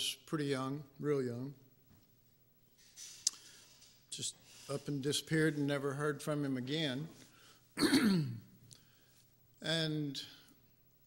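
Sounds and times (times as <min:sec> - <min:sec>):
man clearing his throat: 0:07.8 - 0:08.5.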